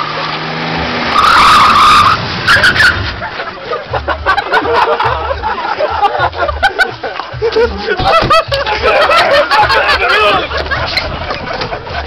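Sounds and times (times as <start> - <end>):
tyres squealing: 0.0 - 3.9, 7.5 - 12.0
car engine revving: 0.0 - 4.3
voices: 2.5 - 12.0.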